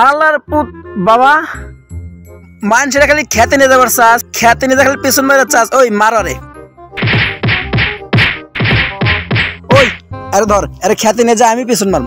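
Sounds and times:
punches landing on a body: 7.0s - 10.0s.

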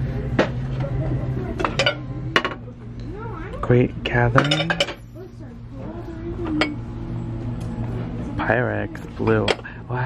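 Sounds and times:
steady low hum: 0.0s - 10.0s
dishes and glassware clinking: 1.6s - 2.6s, 4.3s - 5.1s, 9.4s - 9.7s.

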